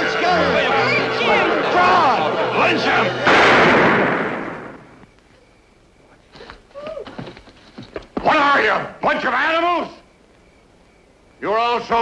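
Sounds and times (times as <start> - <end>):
men shouting angrily: 0.0 - 3.3
loud gunshot: 3.2 - 5.0.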